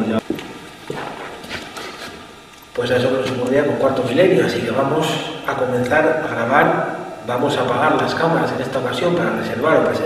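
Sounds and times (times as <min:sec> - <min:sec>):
people moving on hard floor: 0:00.2 - 0:02.3.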